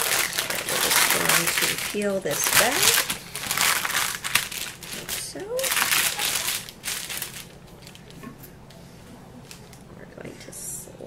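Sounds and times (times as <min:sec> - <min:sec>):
parchment paper crinkling: 0:00.0 - 0:08.2.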